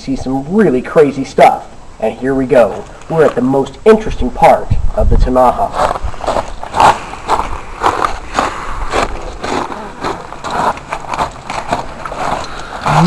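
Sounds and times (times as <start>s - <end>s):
footsteps crunching on gravel: 5.4s - 13.0s.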